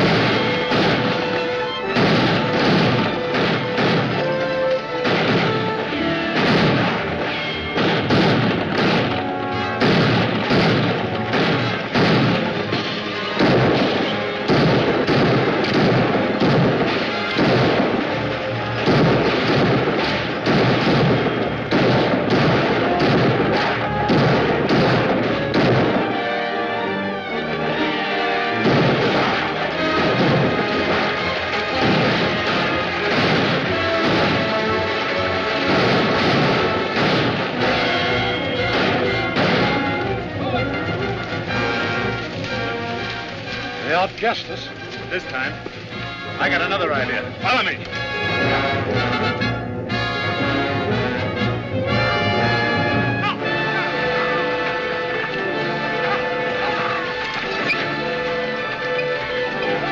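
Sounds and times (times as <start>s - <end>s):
gunshots: 0.0s - 59.9s
orchestral action music: 0.0s - 59.9s
wagons rolling: 0.0s - 59.9s.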